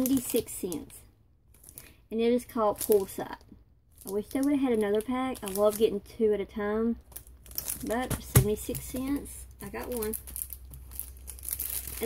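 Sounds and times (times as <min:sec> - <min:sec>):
plastic packaging crinkling: 0:00.0 - 0:00.9, 0:01.6 - 0:02.0, 0:02.7 - 0:03.2, 0:03.9 - 0:06.0, 0:07.1 - 0:12.0.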